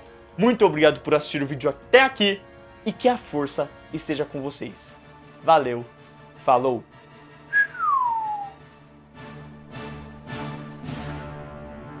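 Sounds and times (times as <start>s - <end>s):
whistle gliding down: 7.5s - 8.6s.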